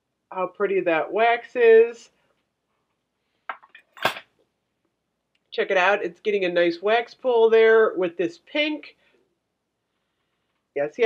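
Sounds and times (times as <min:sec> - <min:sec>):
metal tool clinking on glass jar: 0:03.5 - 0:04.2.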